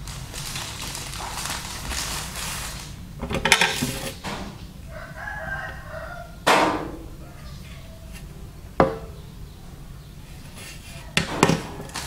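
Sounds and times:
plastic bag crinkling: 0.0s - 4.2s, 10.5s - 12.0s
rooster crowing: 4.8s - 9.2s.

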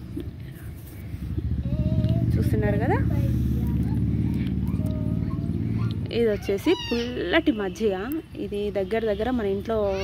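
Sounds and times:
low droning motor hum: 0.0s - 9.6s.

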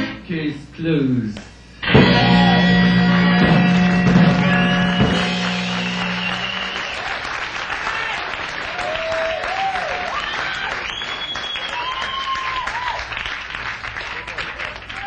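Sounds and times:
rock band final chord: 1.8s - 7.2s
audience calls: 1.9s - 15.0s
audience clapping: 3.2s - 15.0s.

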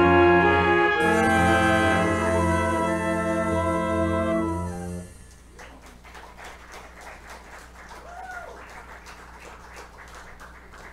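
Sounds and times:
audience clapping: 5.3s - 10.9s.

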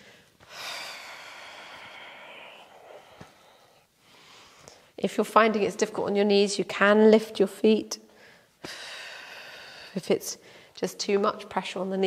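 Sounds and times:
woman breathing out: 0.0s - 4.8s.

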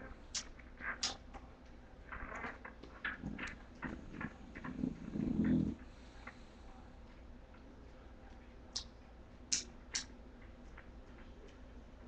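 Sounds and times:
puppy grunting: 3.1s - 5.9s.

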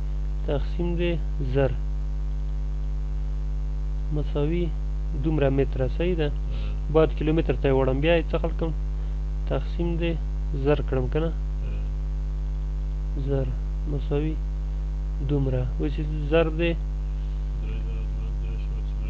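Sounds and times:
electrical mains hum: 0.0s - 19.0s
man speaking: 0.4s - 1.8s, 4.1s - 8.8s, 9.4s - 11.9s, 13.2s - 14.4s, 15.2s - 16.8s, 17.4s - 19.0s.

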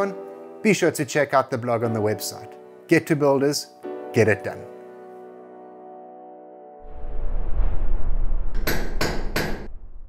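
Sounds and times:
deep rumble: 6.8s - 10.0s.

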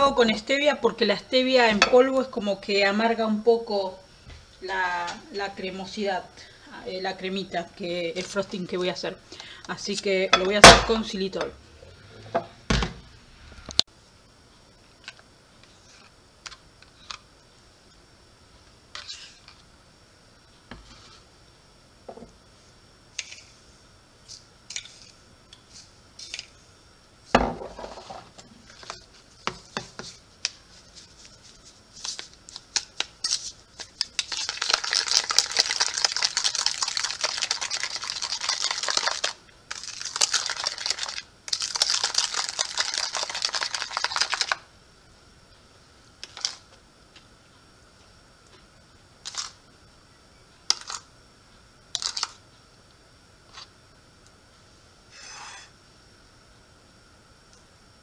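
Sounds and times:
spoon stirring in plastic bowl: 24.3s - 26.5s, 27.8s - 44.6s.

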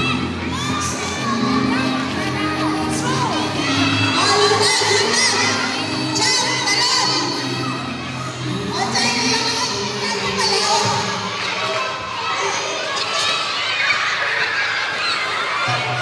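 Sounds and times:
music playing: 0.0s - 11.5s, 15.7s - 16.0s
children shouting and cheering: 0.0s - 16.0s.

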